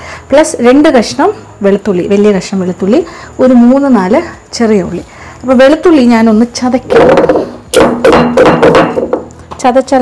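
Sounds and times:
woman talking: 0.3 - 7.1, 9.6 - 10.0.

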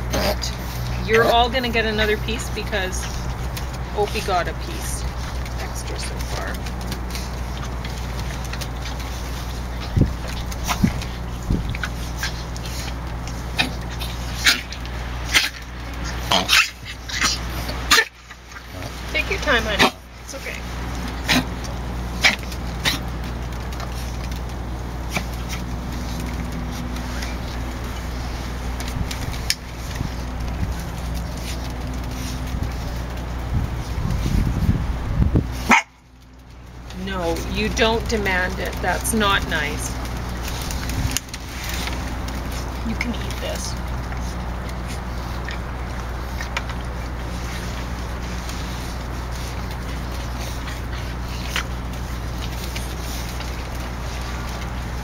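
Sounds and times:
low background rumble: 0.0 - 55.0
steady low hum: 0.0 - 55.0.

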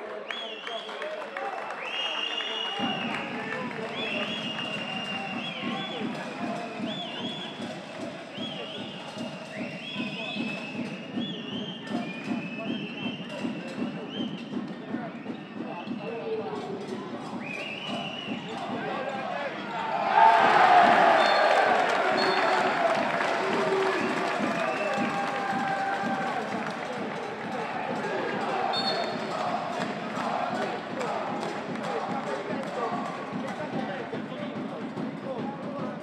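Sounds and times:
crowd cheering and applauding: 0.0 - 8.3, 18.5 - 33.8
crowd noise: 0.0 - 36.0.

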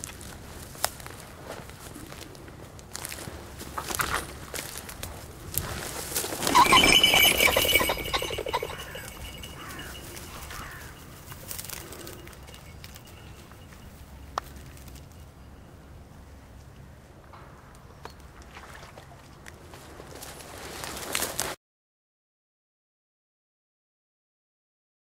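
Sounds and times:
pheasant flushing wingbeats: 6.2 - 12.6
pheasant calls: 6.5 - 13.6
trampling through dry grass: 19.8 - 21.5.

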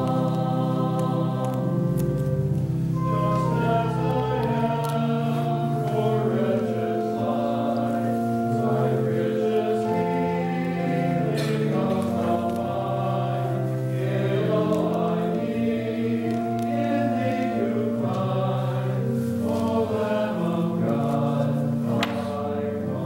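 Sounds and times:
church organ chords: 0.0 - 23.0
voices singing a hymn: 0.0 - 23.0.

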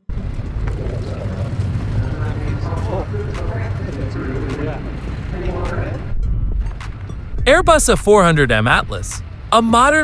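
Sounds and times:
steady low rumble: 0.1 - 10.0.

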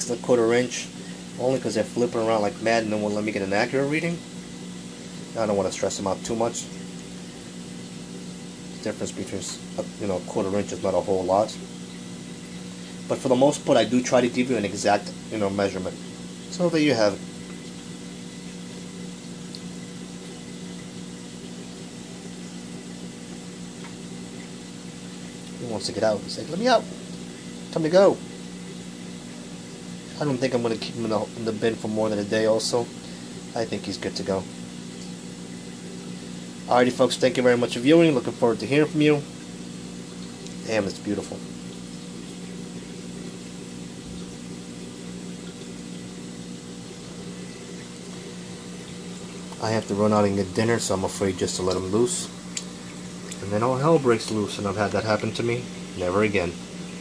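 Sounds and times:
aquarium pumps humming: 0.0 - 57.0
water running and bubbling: 0.0 - 57.0.

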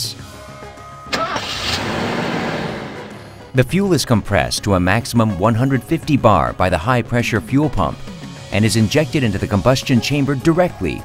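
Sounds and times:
soft background music: 0.0 - 2.0, 3.1 - 11.0
car engine starting and running: 1.0 - 3.5.

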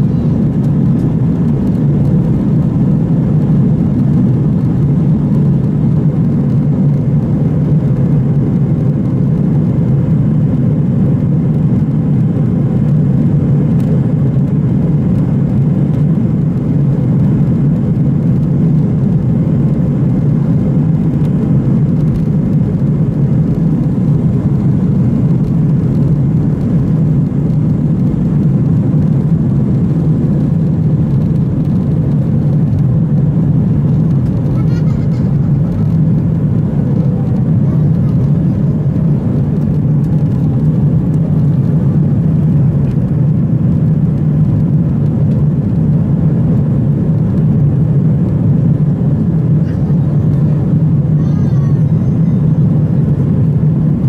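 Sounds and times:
jet engines rumbling at takeoff: 0.0 - 54.0.

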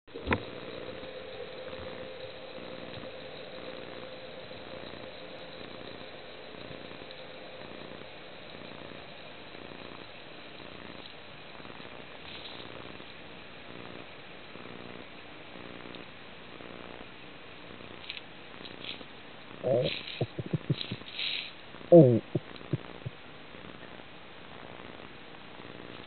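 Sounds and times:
muffled underwater rush: 19.6 - 21.1.

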